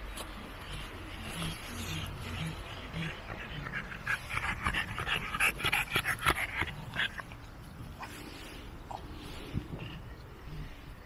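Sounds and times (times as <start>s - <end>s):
dog panting: 0.6s - 10.3s.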